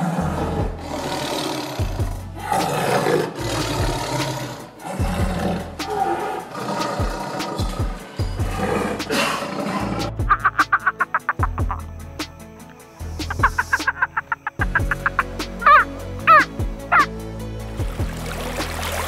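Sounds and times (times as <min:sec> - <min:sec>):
background music: 0:00.0 - 0:19.0
bird rapid clucking calls: 0:10.2 - 0:11.8, 0:13.2 - 0:17.1.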